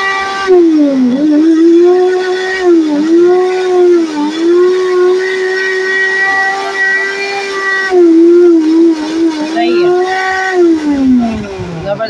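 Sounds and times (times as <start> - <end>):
blender motor whine: 0.0 - 12.0.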